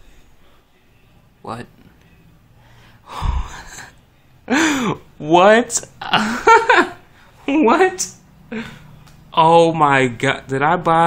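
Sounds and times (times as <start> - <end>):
man gasping: 2.6 - 3.7, 4.5 - 5.0.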